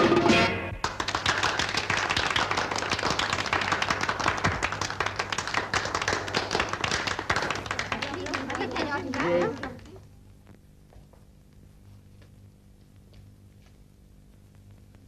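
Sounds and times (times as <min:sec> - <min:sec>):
band music with guitar: 0:00.0 - 0:00.8.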